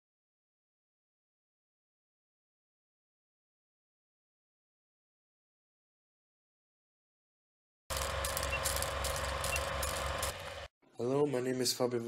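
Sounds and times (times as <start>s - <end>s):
film projector whirring: 7.9s - 10.7s.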